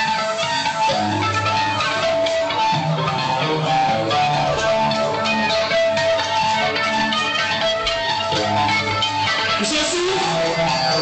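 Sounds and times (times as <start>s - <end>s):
distorted electric guitars: 0.0s - 11.0s
thrash metal band playing: 0.0s - 11.0s.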